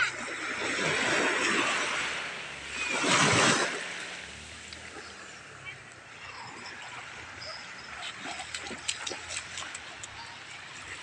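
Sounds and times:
waves washing over sandy shore: 0.0s - 7.4s.

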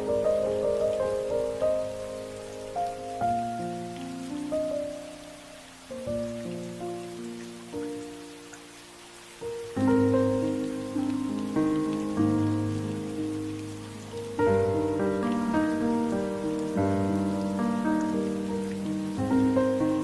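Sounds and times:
gentle instrumental music: 0.0s - 20.0s
rain hissing: 0.0s - 20.0s.

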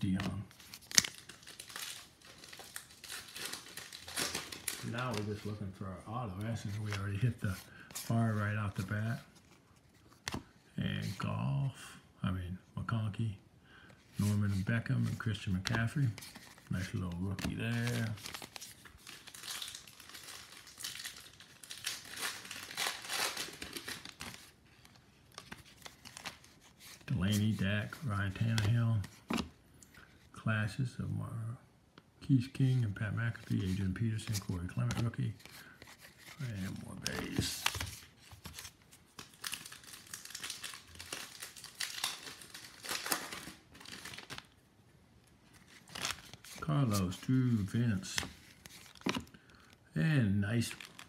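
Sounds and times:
person speaking: 0.0s - 0.6s, 4.6s - 9.4s, 10.7s - 13.4s, 14.1s - 18.4s, 27.0s - 29.4s, 30.4s - 38.0s, 46.5s - 48.4s, 49.9s - 51.0s
cards and packaging rustling: 0.0s - 11.6s, 13.9s - 30.3s, 32.4s - 51.0s.

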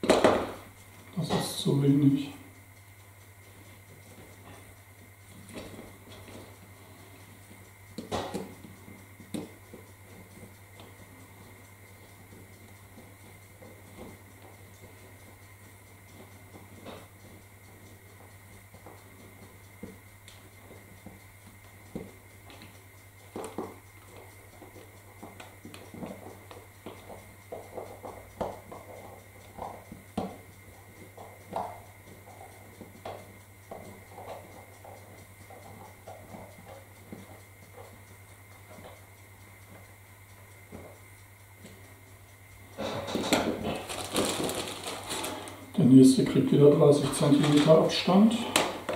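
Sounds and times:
plastic bag crinkling: 43.7s - 45.7s.

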